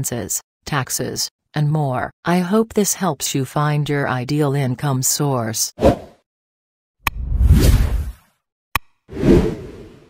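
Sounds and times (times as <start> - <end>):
whoosh: 7.2 - 8.1.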